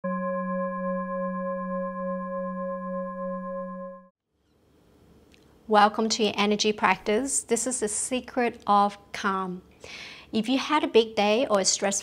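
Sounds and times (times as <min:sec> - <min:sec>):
sustained ringing tone: 0:00.0 - 0:04.1.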